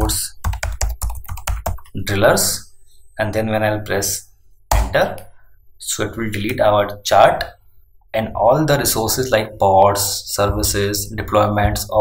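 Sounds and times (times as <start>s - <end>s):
typing on computer keyboard: 0.3s - 2.0s.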